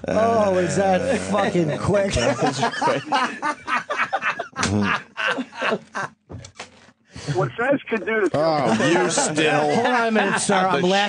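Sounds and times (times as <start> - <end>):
men laughing: 0.2 - 6.3, 7.2 - 11.0.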